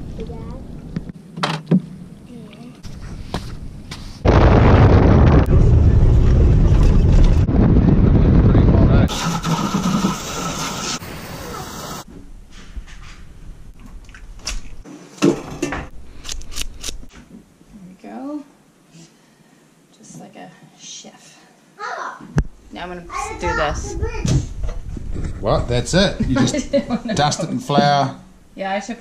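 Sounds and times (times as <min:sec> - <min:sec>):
wind buffeting microphone: 0:02.8 - 0:09.7, 0:22.5 - 0:27.1.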